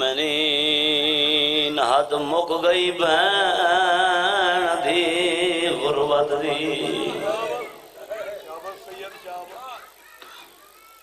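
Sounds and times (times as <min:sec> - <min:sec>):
man chanting: 0:00.0 - 0:07.9.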